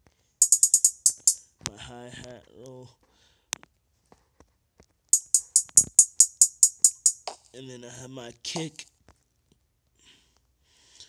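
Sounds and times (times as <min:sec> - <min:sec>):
crisp hi-hat hits: 0:00.4 - 0:01.4, 0:05.2 - 0:07.4.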